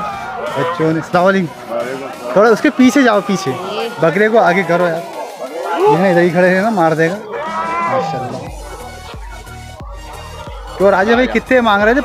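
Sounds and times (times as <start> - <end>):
music with deep bass beat: 8.3 - 12.0.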